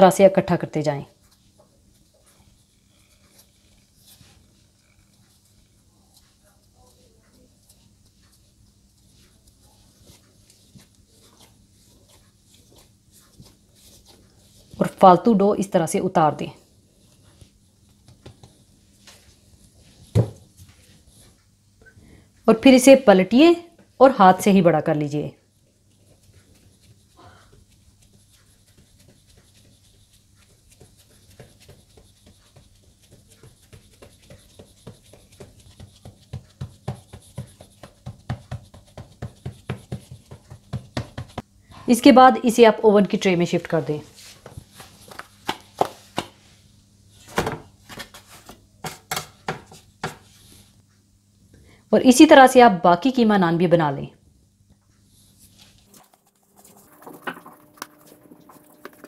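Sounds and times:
hands kneading dough: 1.0s - 15.0s, 16.4s - 21.5s, 23.3s - 41.5s, 43.3s - 50.8s
hand patting dough: 17.3s - 19.2s, 25.7s - 41.5s, 44.2s - 46.5s.

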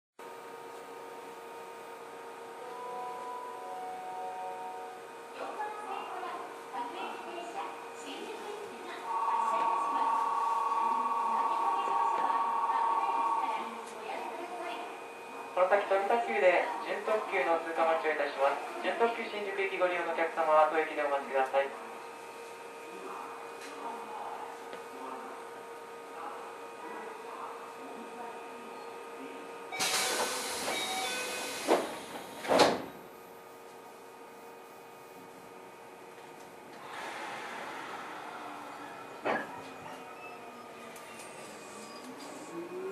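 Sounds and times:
train running noise: 8.1s - 14.7s
high-pitched electric train whine: 8.8s - 18.1s, 36.7s - 42.9s.

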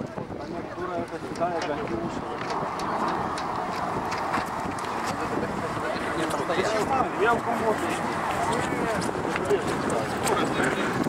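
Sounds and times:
jet engines roaring: 0.0s - 11.0s
people talking: 0.0s - 11.0s.

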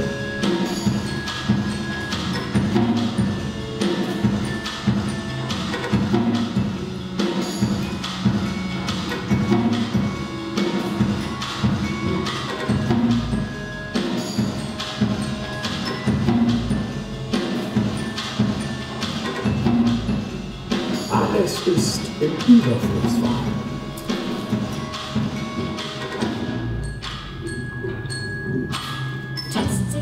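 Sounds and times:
mallets striking drums: 0.0s - 30.0s
ringing bell-like tones: 0.0s - 30.0s.

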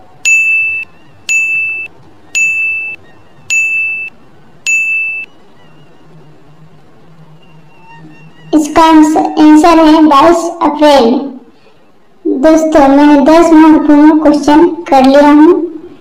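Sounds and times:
electronic countdown dings: 0.2s - 5.3s.

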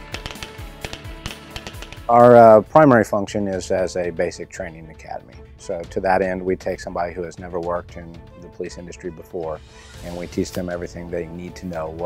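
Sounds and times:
rifles firing: 0.0s - 2.3s
background music: 0.0s - 12.0s.

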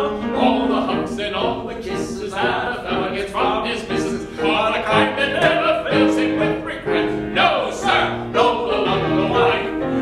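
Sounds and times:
two men singing a duet: 0.0s - 9.9s
piano accompaniment: 0.0s - 10.0s.

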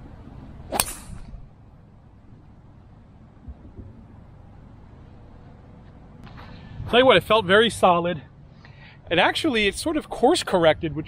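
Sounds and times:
golf club striking ball: 0.7s - 1.4s.

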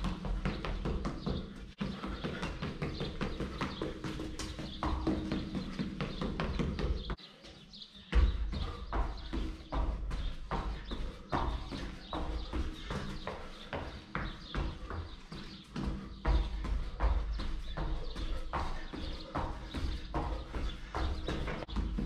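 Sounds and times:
footsteps on concrete: 0.0s - 22.0s.

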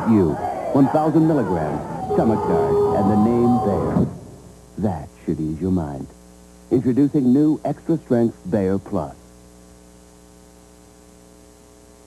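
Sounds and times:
faint tape hiss: 0.0s - 12.0s
mains hum: 0.0s - 12.0s.

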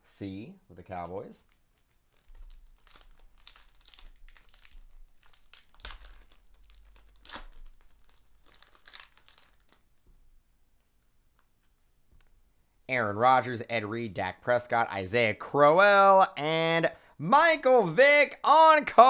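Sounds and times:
foil wrapper tearing and crinkling: 1.4s - 9.9s.

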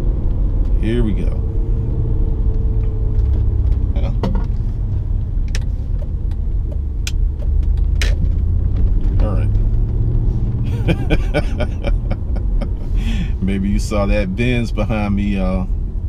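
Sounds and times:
car road and engine rumble: 0.0s - 16.0s.

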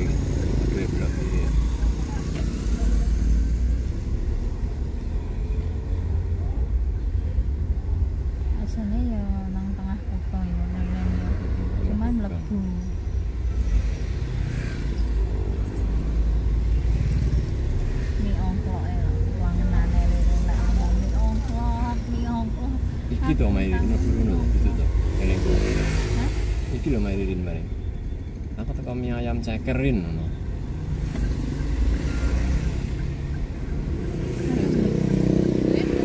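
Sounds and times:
car driving low rumble: 0.0s - 36.0s
voices: 18.2s - 27.7s.

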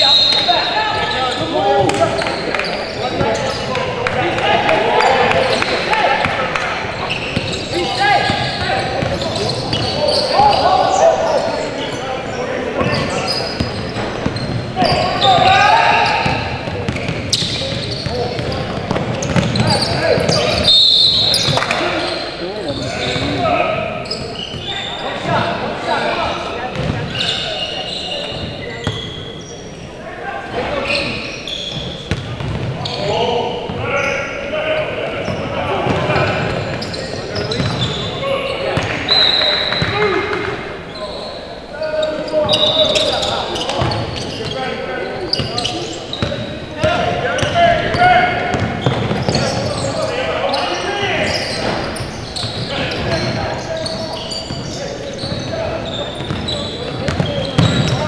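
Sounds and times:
voices calling out in gym: 0.0s - 58.0s
basketball bouncing on court: 16.1s - 20.7s, 26.7s - 27.1s, 31.7s - 33.0s, 35.3s - 38.0s, 46.2s - 49.7s, 56.2s - 58.0s.

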